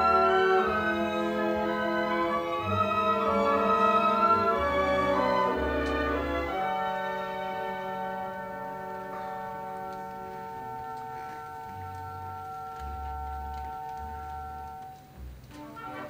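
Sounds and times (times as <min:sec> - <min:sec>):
soft orchestral chord: 0:00.0 - 0:13.6.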